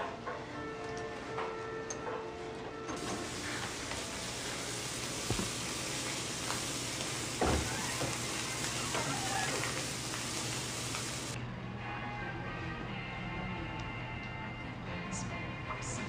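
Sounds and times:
patties sizzling on a griddle: 3.0 - 11.4.

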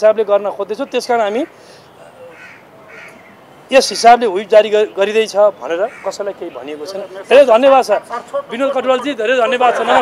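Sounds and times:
outdoor background noise: 0.0 - 10.0
man speaking: 3.7 - 10.0.

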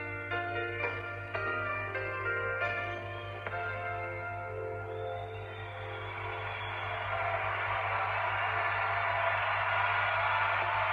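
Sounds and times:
audience applauding: 5.2 - 10.9.

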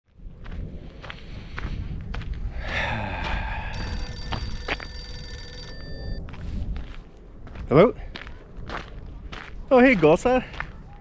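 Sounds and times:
wind rumble on microphone: 0.1 - 3.8, 6.2 - 11.0
mobile phone ringtone: 3.8 - 6.2.

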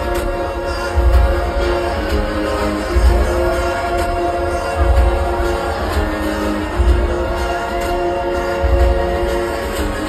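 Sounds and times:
live concert music: 0.0 - 10.0.

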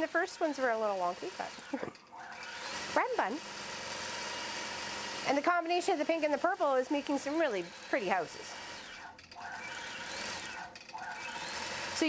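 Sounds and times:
quilting machine motor whirring: 0.0 - 12.0.

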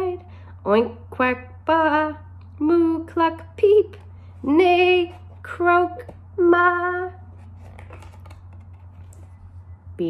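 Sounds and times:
steady low hum: 0.0 - 10.0
cardboard pages turning: 7.3 - 9.6.

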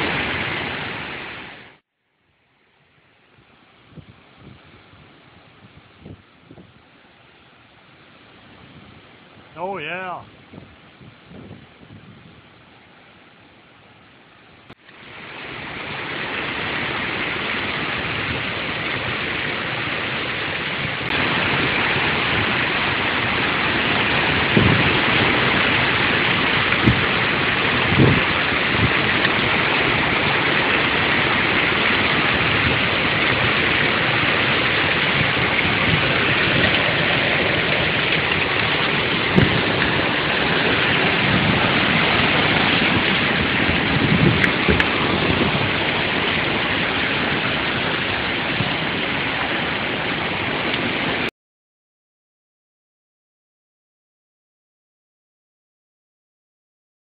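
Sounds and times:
heavy rain pouring: 0.0 - 1.8, 2.8 - 51.3
dull knocks: 26.8 - 27.1, 39.3 - 39.9.

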